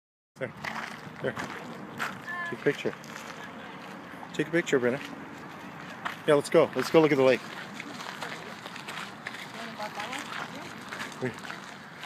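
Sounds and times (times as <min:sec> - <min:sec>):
faint distant voices: 0:01.3 - 0:12.0.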